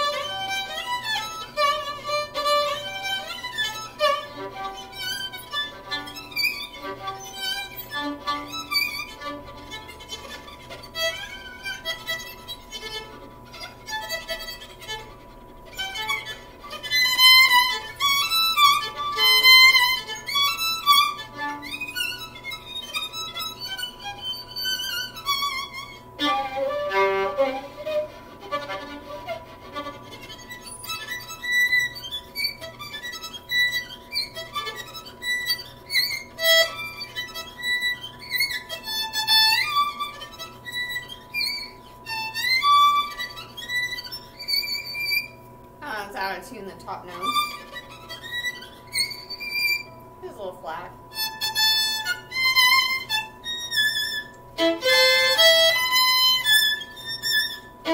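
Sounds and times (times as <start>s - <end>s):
solo violin melody: 0.0s - 45.4s, 46.8s - 49.9s, 51.1s - 57.9s.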